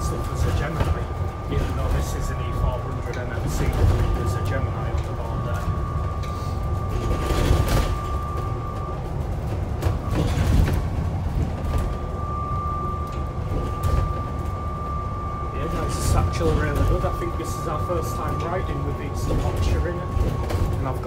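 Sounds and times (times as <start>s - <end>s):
bus engine and road rumble: 0.0s - 21.0s
thin steady whine: 0.0s - 21.0s.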